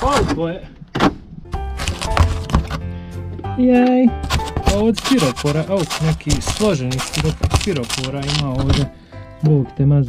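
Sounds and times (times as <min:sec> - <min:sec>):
music: 0:01.3 - 0:10.0
knife ripping through cardboard: 0:01.7 - 0:02.8, 0:04.2 - 0:08.9.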